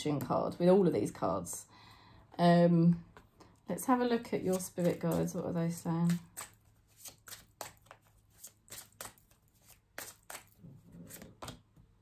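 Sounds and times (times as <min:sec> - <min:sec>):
cards being shuffled: 0:04.4 - 0:11.7.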